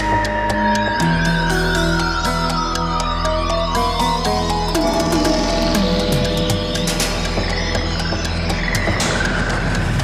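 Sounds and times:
electronic theme music: 0.0 - 10.0.

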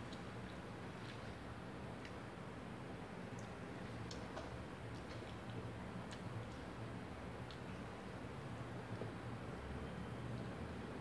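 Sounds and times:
chewing mouth clicks and smacks: 3.4 - 6.3.

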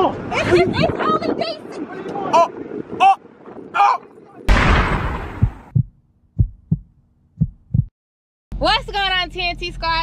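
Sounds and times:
loud noisy boom: 4.5 - 5.7
heartbeat thumps: 4.9 - 7.9.

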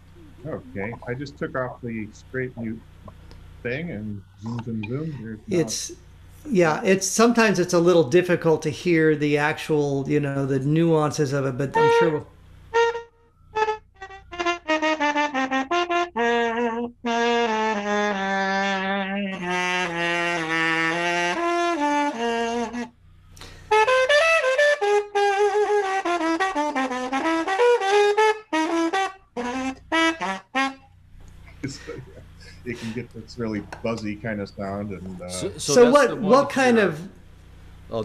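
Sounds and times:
buzzy muted trumpet: 11.7 - 22.9, 23.5 - 30.9.

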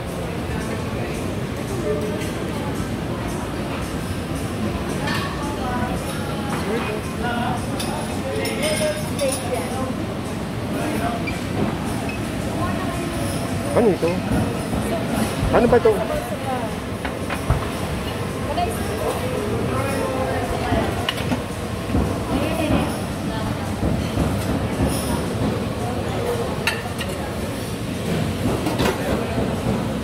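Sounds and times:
indistinct background chatter: 0.0 - 30.0.

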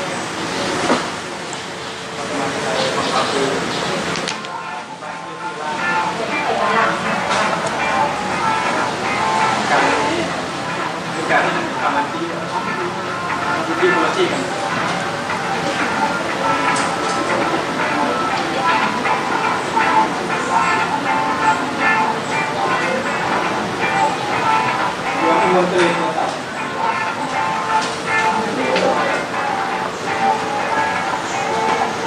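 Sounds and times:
steady background noise: 0.0 - 32.0
background music: 4.6 - 32.0.

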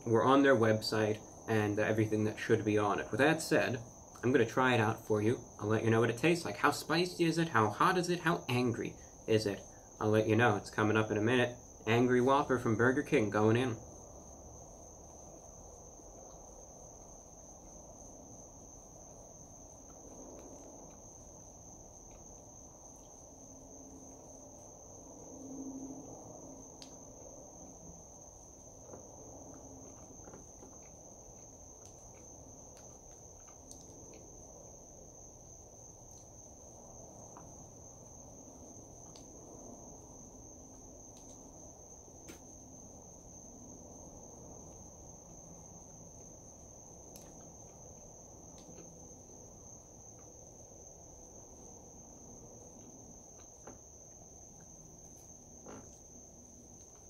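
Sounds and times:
chewing food: 28.8 - 34.4.

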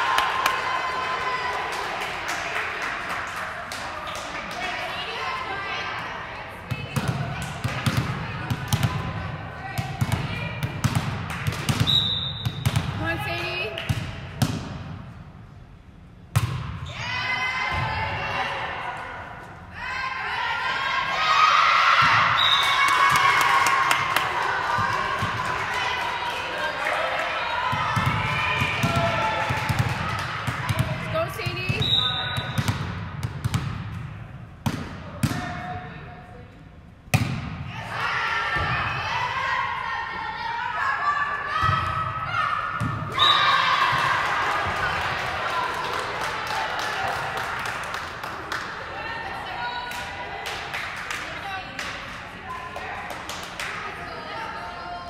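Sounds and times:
cheering and shouting: 0.0 - 2.9, 16.9 - 31.8, 37.7 - 47.9, 48.8 - 51.7
volleyball hits and thuds: 6.7 - 13.0, 13.8 - 15.0, 16.3 - 16.8, 27.7 - 31.0, 31.6 - 35.8, 37.1 - 37.7.

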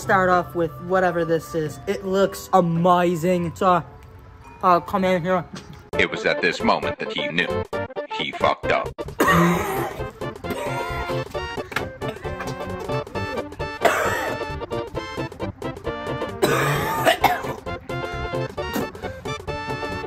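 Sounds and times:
background music: 0.0 - 20.0
man coughing and gagging: 9.1 - 11.2, 13.8 - 14.5, 16.4 - 17.7, 18.6 - 19.1.

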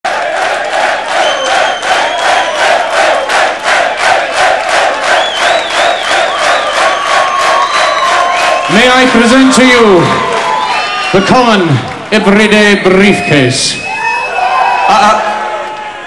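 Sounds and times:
crowd clapping in rhythm: 0.0 - 13.0, 15.5 - 16.0
crowd cheering: 0.0 - 16.0
shrill whistles: 1.1 - 3.4, 5.0 - 9.0, 13.1 - 14.9.

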